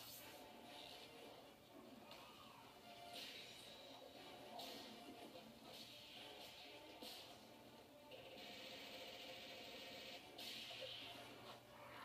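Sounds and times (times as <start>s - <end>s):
television hiss: 0.0s - 12.0s.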